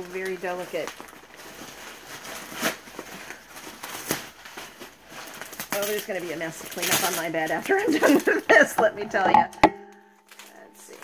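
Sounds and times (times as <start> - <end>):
packing material rustling: 0.0 - 9.2, 9.9 - 11.0.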